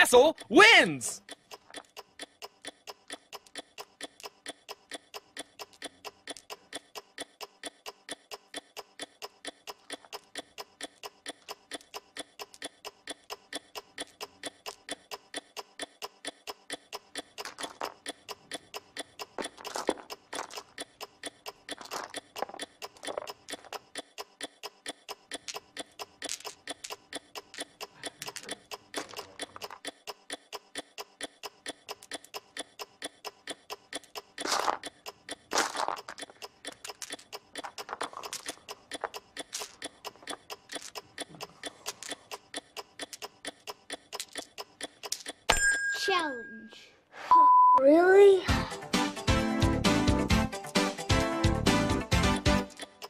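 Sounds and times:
clock ticking: 0.0s - 46.3s, 48.2s - 53.0s.

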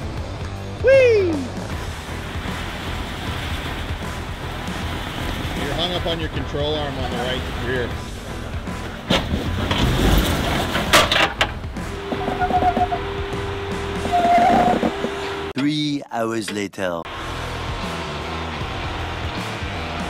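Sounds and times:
background music: 0.0s - 15.5s, 17.1s - 20.0s
car engine running low: 1.6s - 15.5s.

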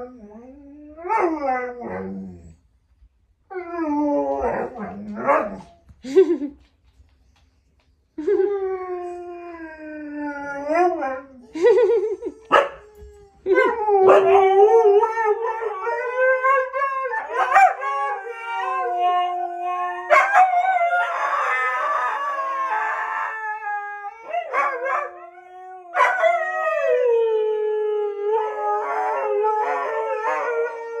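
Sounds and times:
dogs howling: 12.7s - 31.0s.

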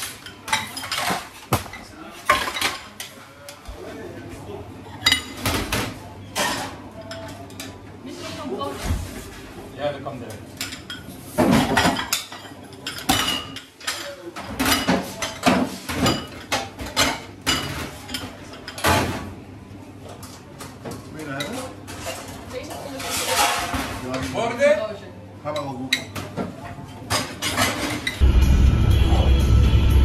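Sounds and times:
metal trays and dishes clinking: 0.0s - 3.2s, 10.2s - 19.4s, 20.1s - 24.8s, 25.5s - 28.2s.

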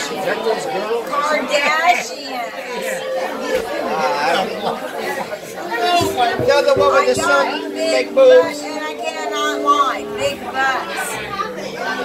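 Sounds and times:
bar-room chatter: 0.0s - 12.0s.

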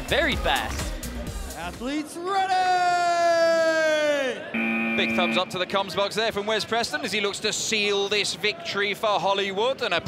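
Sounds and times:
electronic buzzer tone: 4.6s - 5.6s.

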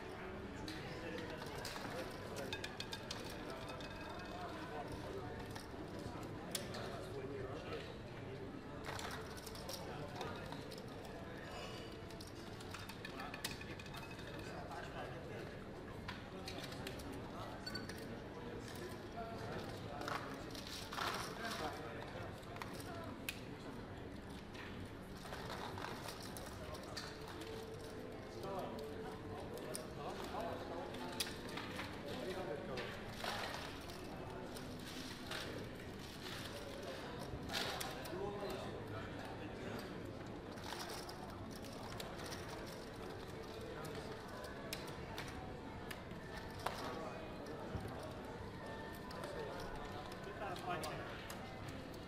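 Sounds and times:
murmur of voices: 0.0s - 52.0s
roulette chips clicking and clattering: 1.2s - 5.7s.

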